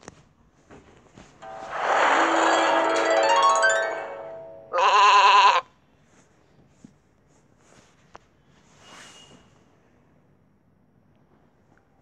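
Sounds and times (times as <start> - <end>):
shimmering magical chime: 1.4 - 4.8
wavering sheep bleat: 4.7 - 5.7.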